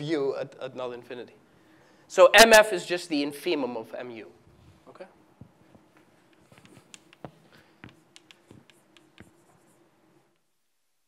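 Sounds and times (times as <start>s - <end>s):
chalk tapping and scratching: 6.4s - 9.9s.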